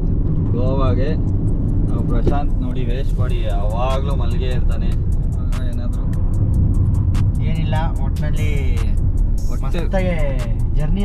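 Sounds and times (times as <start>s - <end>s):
car road and engine rumble: 0.0s - 11.0s
music with ticking beat: 0.0s - 11.0s.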